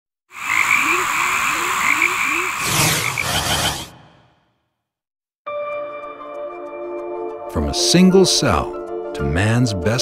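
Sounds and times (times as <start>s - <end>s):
frogs croaking: 0.3s - 4.0s.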